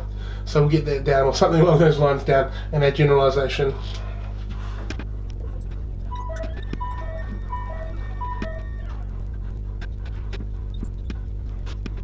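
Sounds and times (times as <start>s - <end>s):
steady low hum: 0.0s - 12.0s
two-note tone: 6.1s - 9.3s.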